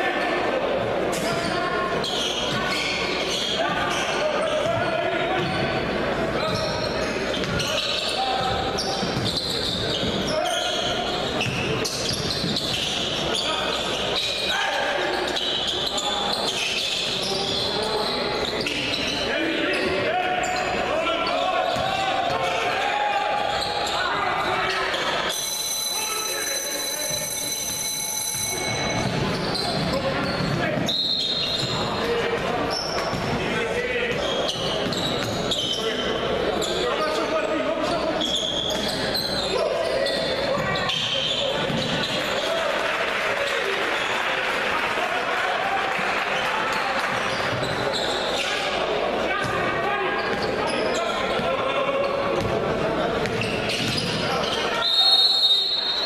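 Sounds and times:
voices echoing in a hall: 0.0s - 56.0s
ball bouncing on hardwood court: 40.5s - 42.0s, 53.2s - 54.2s.

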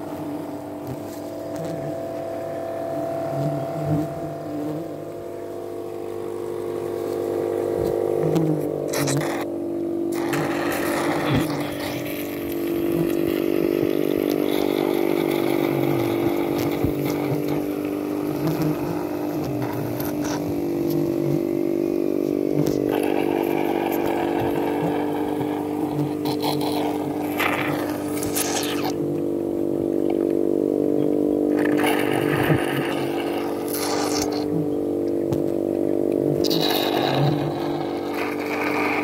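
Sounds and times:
electric suction pump humming: 0.0s - 39.0s.

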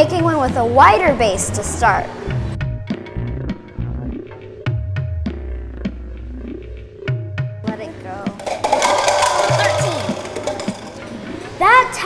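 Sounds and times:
plastic cups clattering: 8.3s - 11.2s.

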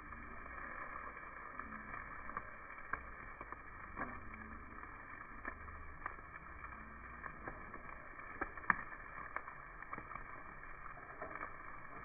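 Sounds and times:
chicken sizzling on grill: 0.0s - 12.0s.

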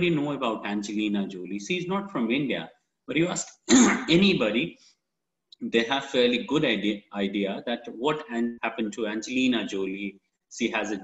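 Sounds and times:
man speaking: 0.0s - 4.8s, 5.6s - 11.0s
throat clearing: 3.7s - 4.2s.

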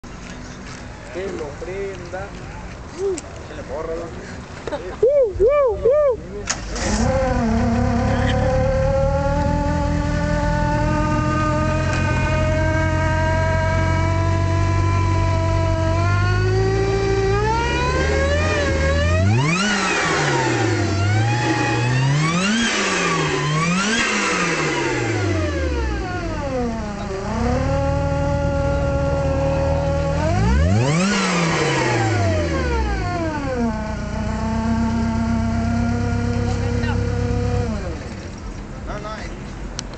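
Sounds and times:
supercharged car engine revving: 6.4s - 38.4s.

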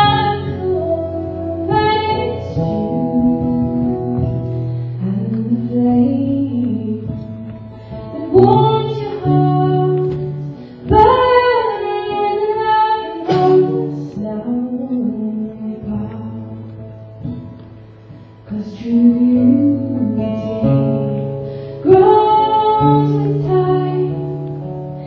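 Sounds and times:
woman singing: 0.0s - 17.5s, 18.4s - 25.0s
acoustic guitar: 0.0s - 25.0s.

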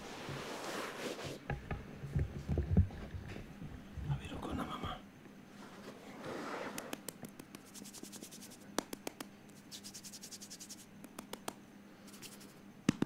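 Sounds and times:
hand rubbing softly: 5.6s - 8.7s, 9.5s - 10.9s.

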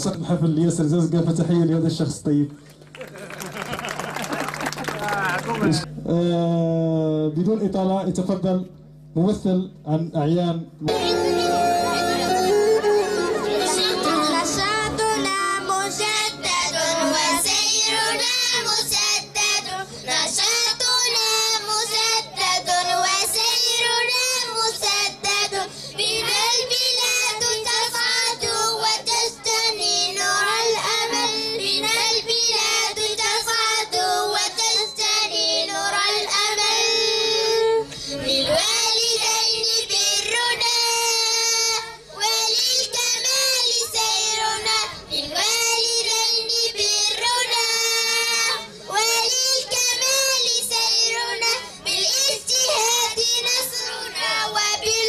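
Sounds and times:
children singing over loudspeaker: 10.9s - 55.0s.

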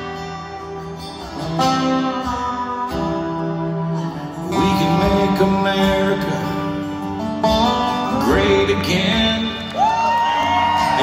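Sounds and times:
slide guitar gliding notes: 0.0s - 11.0s
strummed acoustic guitars: 0.0s - 11.0s.

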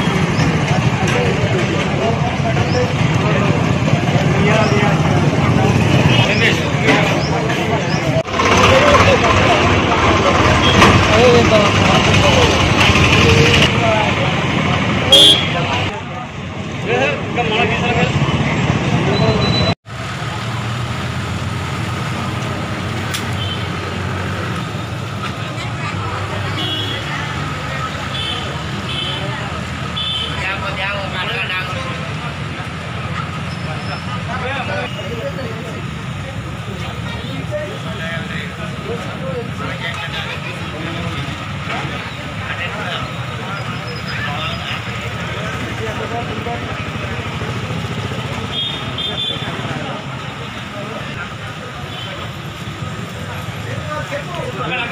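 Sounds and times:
passing traffic: 0.0s - 54.9s
street voices: 0.0s - 54.9s.

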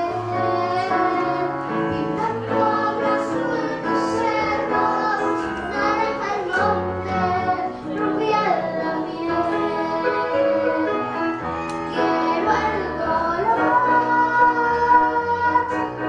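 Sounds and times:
piano: 0.0s - 16.0s
girl singing into microphone: 11.6s - 15.9s.

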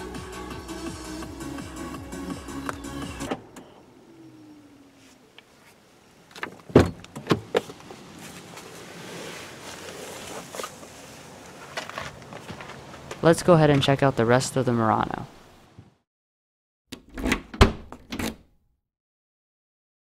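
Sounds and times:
background music: 0.0s - 3.4s.

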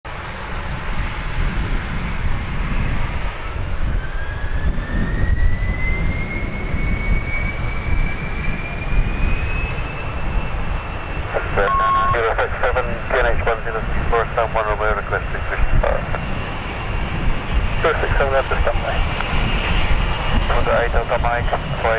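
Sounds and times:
jet engines at takeoff power: 0.1s - 21.9s
rising engine whine: 0.1s - 21.9s.

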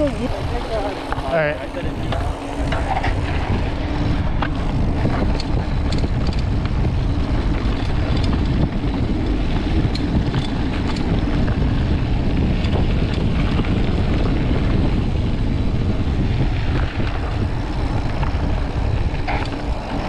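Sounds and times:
bike clicks and rattles: 0.0s - 20.0s
bike tyres rolling on gravel: 0.0s - 20.0s
wind buffeting microphone: 0.0s - 20.0s.

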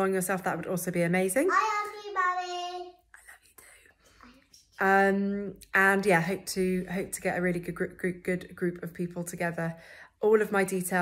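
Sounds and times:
woman speaking: 0.0s - 1.5s, 4.8s - 11.0s.

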